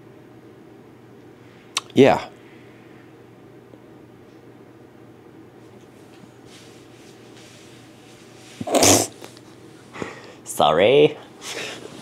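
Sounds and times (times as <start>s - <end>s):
man sneezing loudly: 8.6s - 9.2s.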